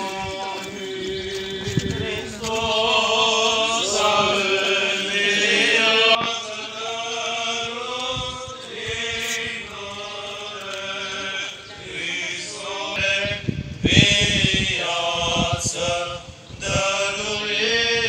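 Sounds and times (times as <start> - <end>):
voices chanting: 0.0 - 18.0.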